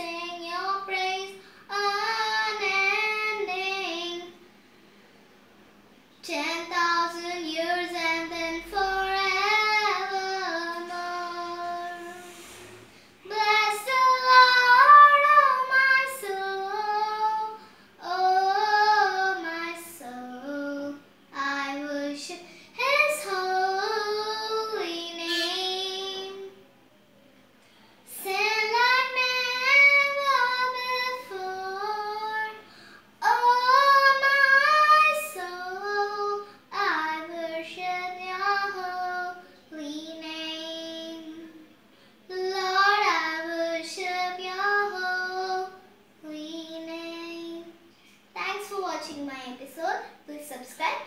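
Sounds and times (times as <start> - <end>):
girl singing unaccompanied: 0.0 - 4.6, 6.1 - 26.8, 28.0 - 51.0.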